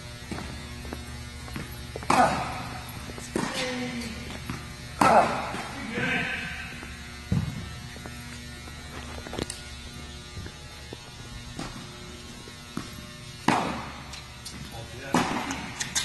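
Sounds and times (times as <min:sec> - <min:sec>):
steady electrical hum: 0:00.0 - 0:16.0
tennis balls struck with rackets: 0:00.3 - 0:07.6, 0:11.5 - 0:11.9, 0:12.7 - 0:16.0.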